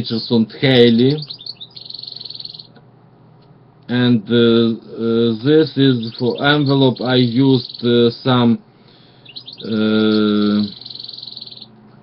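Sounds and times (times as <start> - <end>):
songbird chirping and trilling: 0.0 - 2.8, 4.4 - 11.8.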